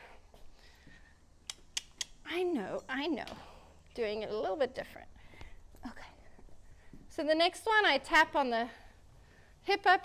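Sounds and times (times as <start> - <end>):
short sharp clicks: 1.4 - 2.2.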